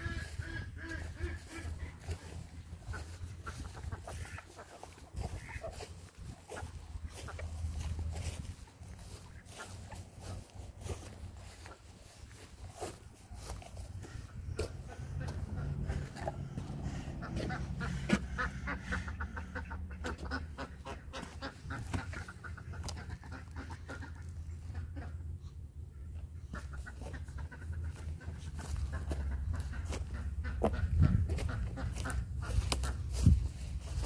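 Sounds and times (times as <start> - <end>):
chickens clucking: 0.0 - 34.0
low microphone rumble: 5.0 - 22.0.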